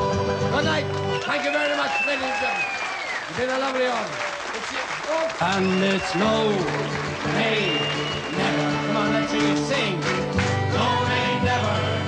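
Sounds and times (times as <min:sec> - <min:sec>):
audience applauding: 0:00.8 - 0:12.0
voices: 0:03.3 - 0:10.1
folk band playing: 0:05.5 - 0:12.0.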